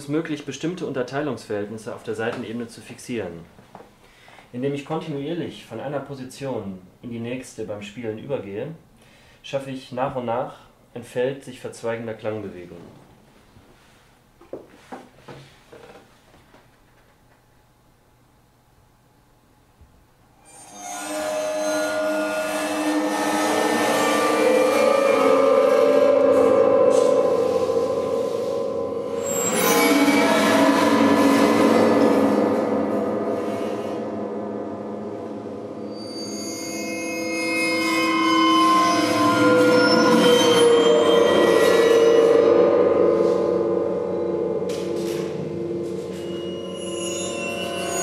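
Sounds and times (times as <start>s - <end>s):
sustained piano string tones: 20.5s - 48.0s.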